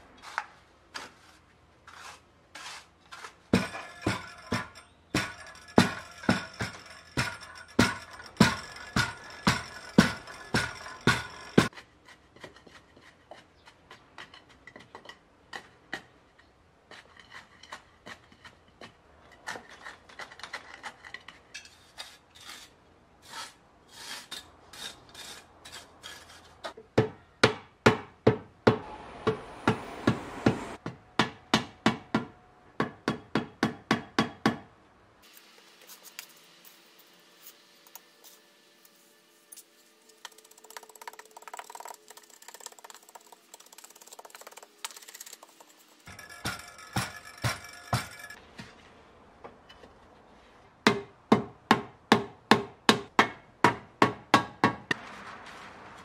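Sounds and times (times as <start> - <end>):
trowel scraping soil: 0.1 - 26.8, 35.2 - 48.8.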